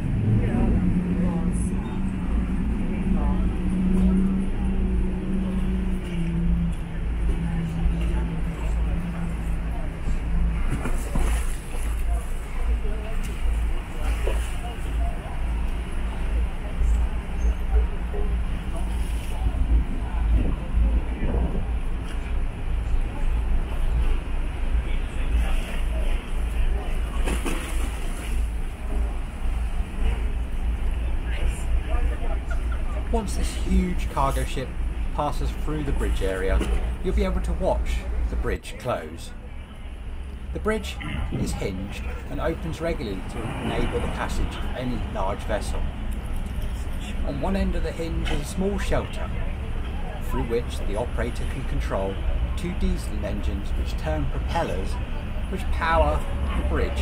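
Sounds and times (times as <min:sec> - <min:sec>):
deep constant rumble: 0:00.0 - 0:57.0
ship engine humming: 0:00.0 - 0:57.0
ship wash churning against quay: 0:00.0 - 0:57.0.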